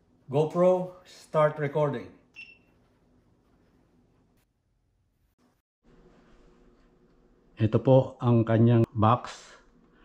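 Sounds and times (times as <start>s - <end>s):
high electronic camera beep: 2.4s - 2.7s.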